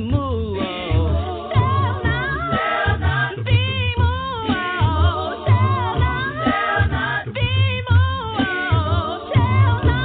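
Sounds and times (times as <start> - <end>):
a cappella vocal group singing: 0.0 - 10.0.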